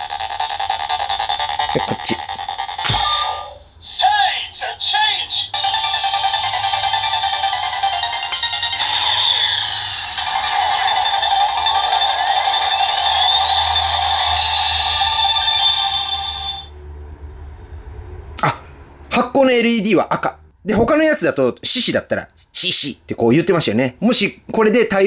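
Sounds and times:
toy electronic sound effects: 0:00.0 - 0:16.7
toy speaker music: 0:00.0 - 0:16.7
rising electronic tone: 0:06.1 - 0:18.3.

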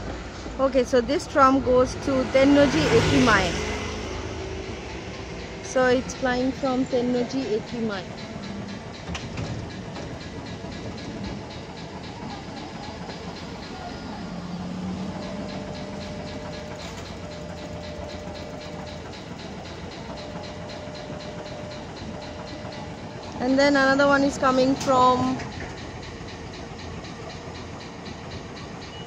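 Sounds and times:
tram and street rumble: 0:00.0 - 0:29.0.

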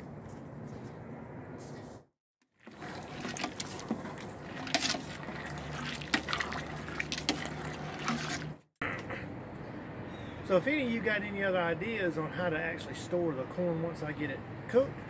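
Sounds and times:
water sloshing in a metal pot: 0:02.5 - 0:08.7.

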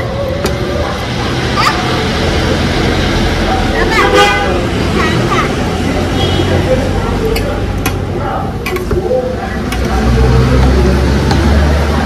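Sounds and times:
faint voices: 0:00.0 - 0:12.0
road traffic rumble: 0:00.0 - 0:12.0
vehicle horn: 0:03.9 - 0:04.7, 0:06.1 - 0:06.6.

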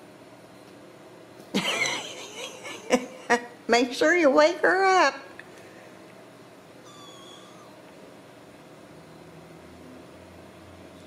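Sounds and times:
kitten mewing: 0:06.8 - 0:07.9.

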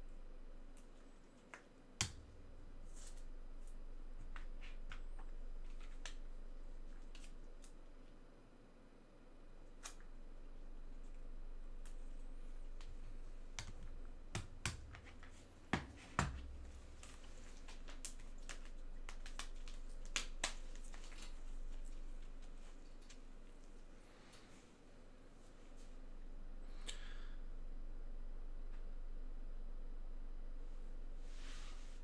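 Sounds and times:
faint low hum: 0:00.0 - 0:32.0.

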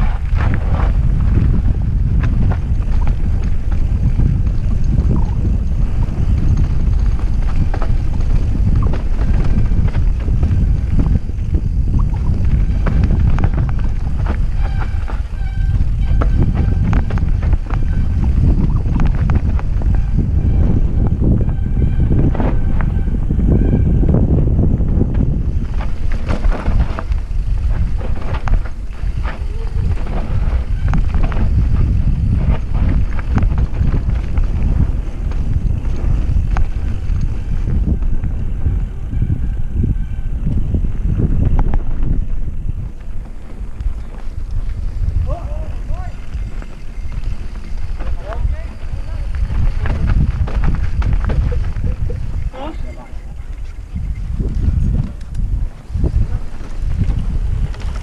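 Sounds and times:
bike rattling over rocks: 0:00.0 - 0:21.6, 0:24.5 - 0:38.8, 0:40.9 - 0:58.0
wind buffeting microphone: 0:00.0 - 0:58.0.

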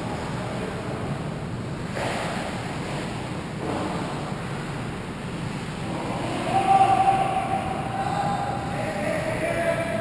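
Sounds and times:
ice rink rushing noise: 0:00.0 - 0:08.7.

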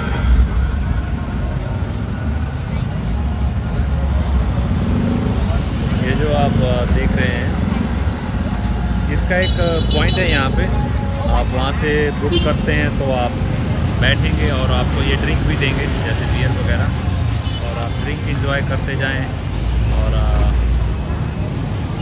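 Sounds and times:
people's voices: 0:00.0 - 0:22.0
traffic engine rumble: 0:00.0 - 0:22.0.

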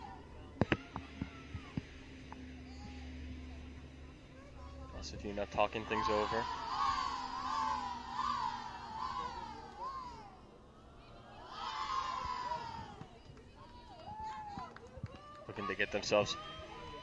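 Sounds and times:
high-pitched shouted chanting: 0:05.6 - 0:10.4.

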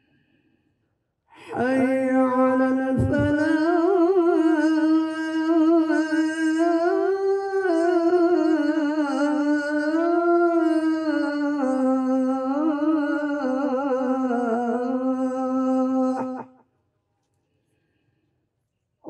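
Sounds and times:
man chanting prayer: 0:01.4 - 0:16.4.

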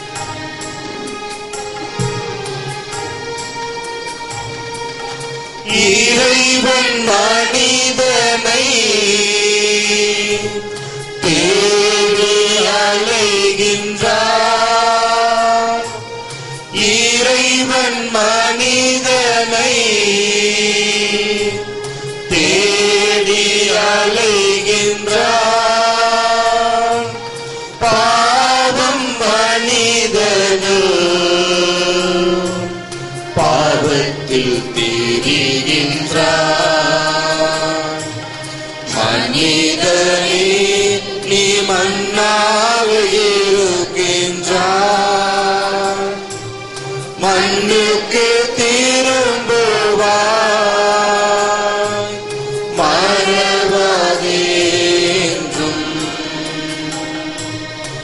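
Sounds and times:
hymn singing: 0:00.0 - 0:58.0
sustained instrumental tones: 0:00.0 - 0:58.0.

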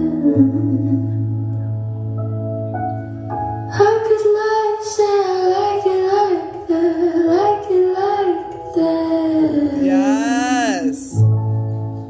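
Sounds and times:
high voice singing long notes: 0:09.7 - 0:11.2.

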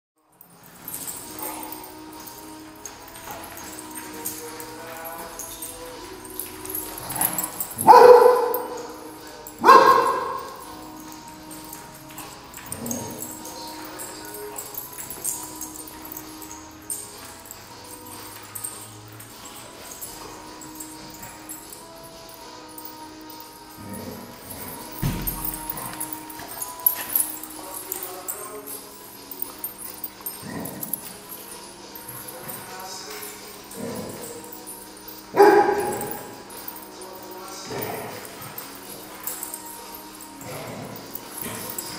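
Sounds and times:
dogs playing: 0:00.2 - 0:41.9
dog barking loudly: 0:07.8 - 0:08.8, 0:09.6 - 0:10.5, 0:35.4 - 0:36.1.

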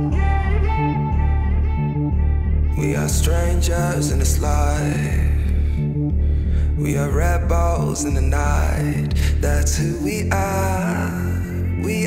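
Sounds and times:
pop-rock guitar and bass: 0:00.0 - 0:12.0.

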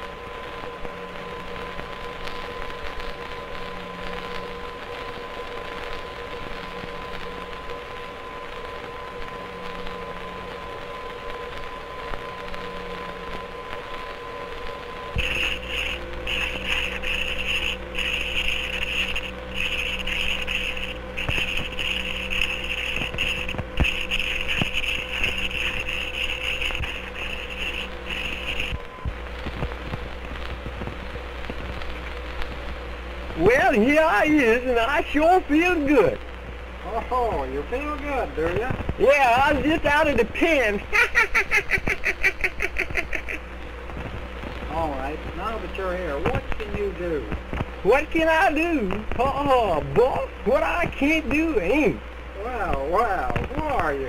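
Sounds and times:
low hum: 0:00.0 - 0:41.0
film soundtrack hiss and crackle: 0:00.0 - 0:54.0
thin steady tone: 0:08.9 - 0:29.0.

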